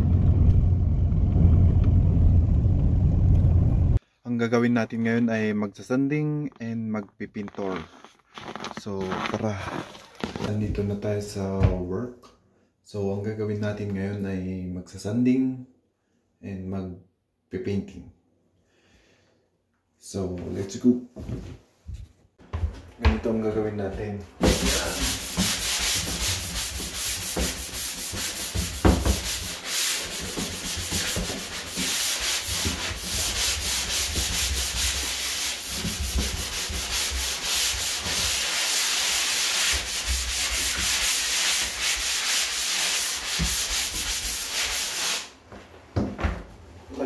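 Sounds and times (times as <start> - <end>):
sanding sponge rubbing drywall: 24.4 - 45.4.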